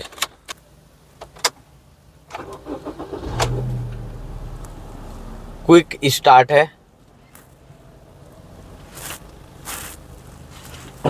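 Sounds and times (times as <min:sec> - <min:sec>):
car engine starting and idling: 0:00.0 - 0:11.0.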